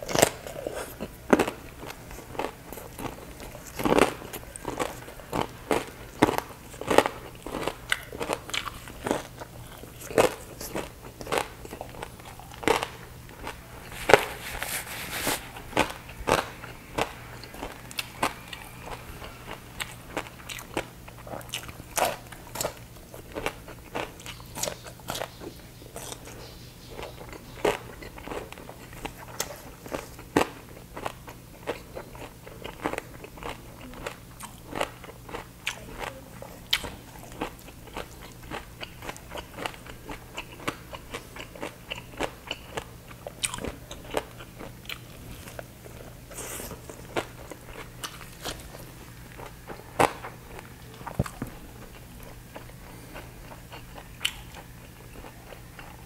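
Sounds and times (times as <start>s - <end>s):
crunchy chewing and biting: 0.0s - 56.0s.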